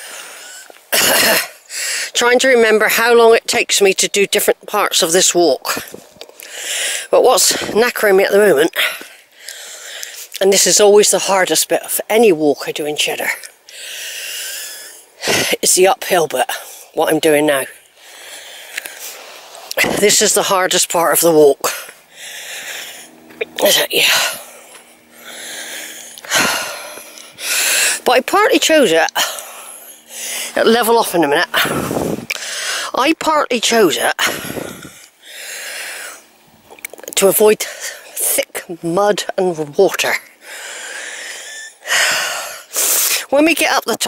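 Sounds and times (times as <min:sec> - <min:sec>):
woman coughing: 0:00.9 - 0:01.6
woman breathing hard: 0:01.6 - 0:02.2, 0:06.4 - 0:07.1, 0:08.8 - 0:10.3, 0:13.7 - 0:15.5, 0:18.0 - 0:19.5, 0:21.7 - 0:23.3, 0:24.2 - 0:28.0, 0:31.5 - 0:33.0, 0:34.2 - 0:36.3, 0:40.4 - 0:43.2.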